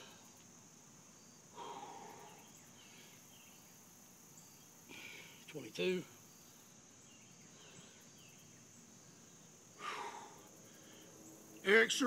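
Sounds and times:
crickets chirring: 0.0s - 12.0s
man breathing out hard: 1.5s - 3.2s, 4.9s - 5.4s, 9.8s - 11.2s.

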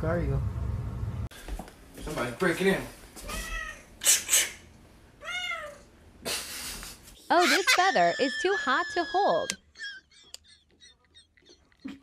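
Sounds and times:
cat meowing: 3.2s - 3.9s, 5.2s - 5.9s
short hissing noises: 4.0s - 4.7s.

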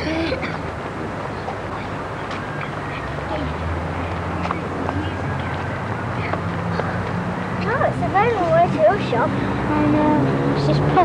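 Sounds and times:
children's voices: 4.4s - 11.0s.

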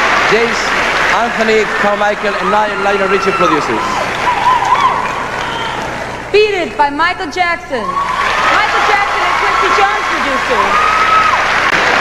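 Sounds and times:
audience applauding: 0.0s - 6.3s, 8.0s - 12.0s.

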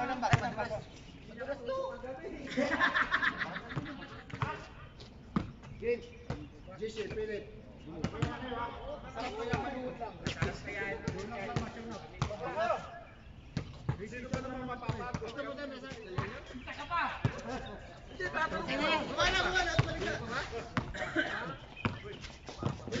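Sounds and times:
players calling out: 14.0s - 23.0s
basketball bouncing on hard court: 19.7s - 20.1s, 21.8s - 22.9s.

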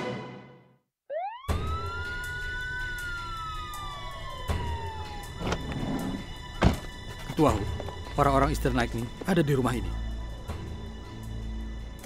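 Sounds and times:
police siren wailing: 1.1s - 7.6s
knocks and thuds: 6.6s - 7.2s.

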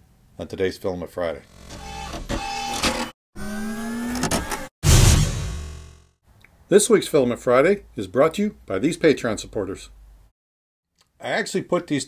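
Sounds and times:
small motor whine: 3.4s - 4.7s
loud sudden hit: 4.8s - 6.1s.

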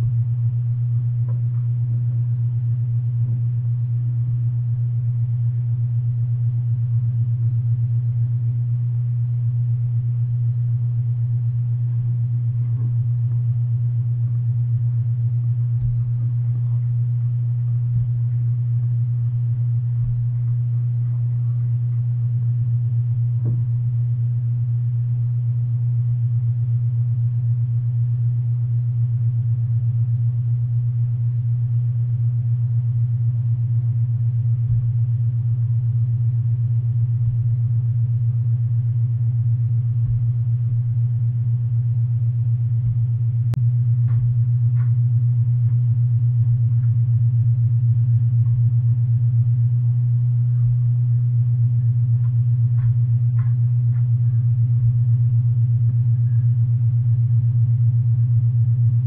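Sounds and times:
loud steady low hum: 0.0s - 59.0s.

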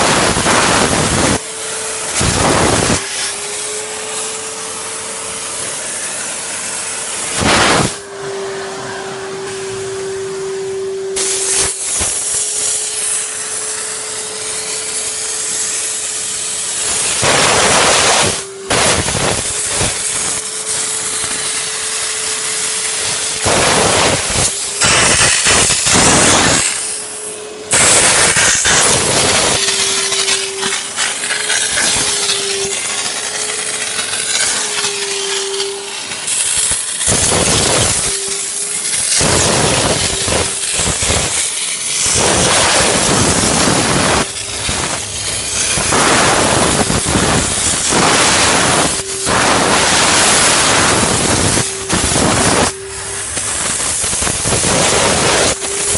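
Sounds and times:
steam nozzle hissing: 0.0s - 55.9s
vacuum cleaner motor whine: 0.0s - 55.9s.

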